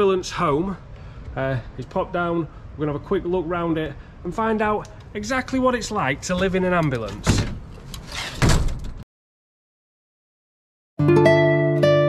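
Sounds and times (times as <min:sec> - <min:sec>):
vehicle door rush of noise: 0:07.0 - 0:09.0.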